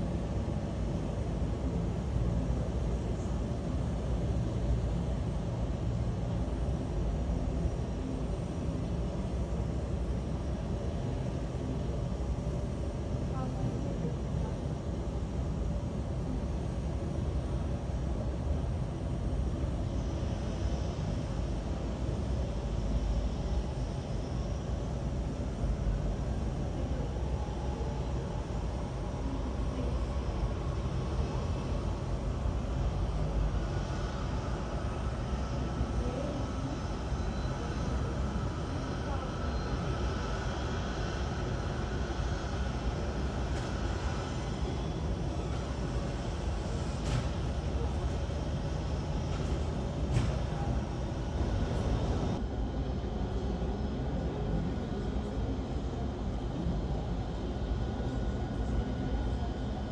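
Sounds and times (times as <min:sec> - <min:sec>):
aircraft and tractor low rumble: 0:00.0 - 0:59.9
faint high whine: 0:00.0 - 0:59.9.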